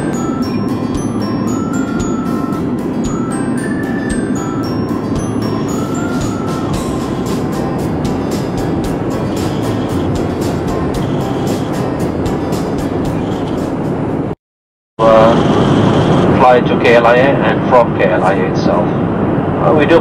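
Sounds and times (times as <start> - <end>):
music with steady beat: 0.0 - 14.1.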